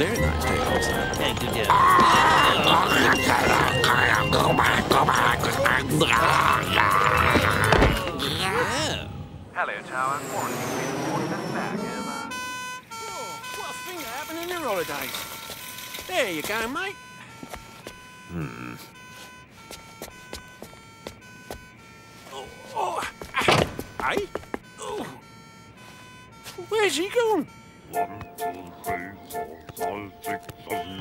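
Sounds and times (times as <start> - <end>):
music: 0.0 - 8.1, 27.5 - 31.0
grunting voices: 0.0 - 12.3, 18.3 - 18.9
cartoon two-tone ambulance siren: 0.0 - 31.0.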